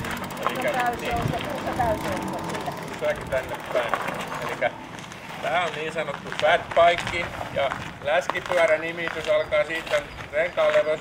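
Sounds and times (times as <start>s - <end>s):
people talking: 0.4s - 4.8s, 5.4s - 11.0s.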